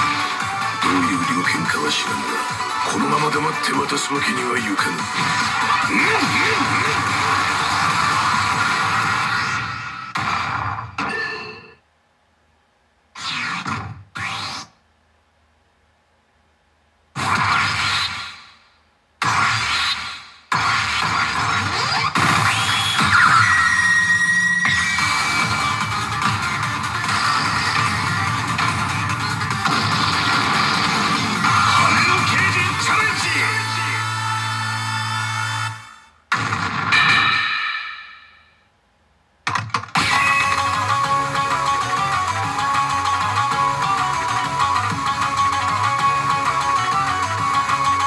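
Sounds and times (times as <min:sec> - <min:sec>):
loud electronic music: 0:00.0 - 0:09.3, 0:22.0 - 0:35.9, 0:40.0 - 0:48.0
electronic sound effects: 0:00.0 - 0:11.8, 0:19.3 - 0:35.8.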